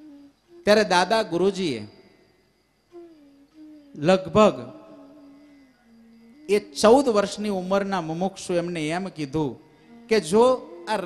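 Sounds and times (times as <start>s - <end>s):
faint low humming tone: 0.0s - 11.0s.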